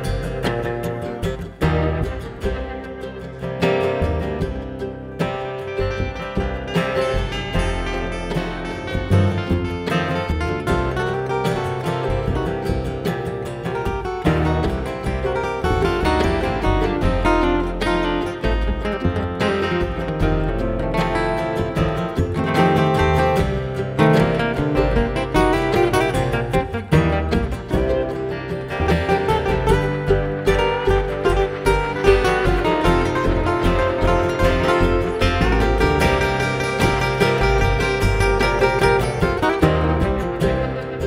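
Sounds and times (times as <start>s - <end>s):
acoustic guitar lead: 0.0s - 41.0s
rhythm guitar: 0.0s - 41.0s
upright bass: 0.0s - 41.0s.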